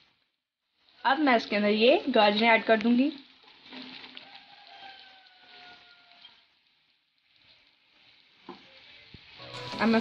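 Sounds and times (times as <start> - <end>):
vegetables and meat frying in a wok: 0.0 - 10.0.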